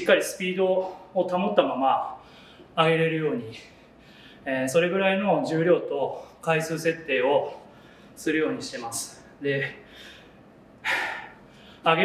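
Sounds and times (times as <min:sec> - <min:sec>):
man speaking: 0:00.0 - 0:02.2, 0:02.8 - 0:03.8, 0:04.4 - 0:09.9
man breathing: 0:00.8 - 0:01.2, 0:02.2 - 0:02.8, 0:03.6 - 0:04.5, 0:07.5 - 0:08.2, 0:09.6 - 0:11.9.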